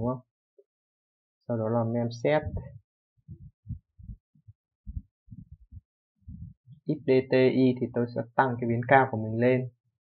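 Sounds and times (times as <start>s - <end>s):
muffled low thumps: 2.3s - 7.2s.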